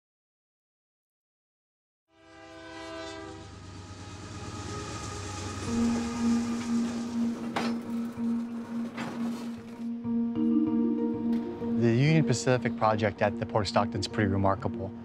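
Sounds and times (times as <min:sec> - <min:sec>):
train horn chord: 0:02.1 - 0:10.6
rush of passing railcars: 0:02.2 - 0:09.8
steady low tone: 0:03.4 - 0:15.0
wheels clacking over rails: 0:03.5 - 0:09.9.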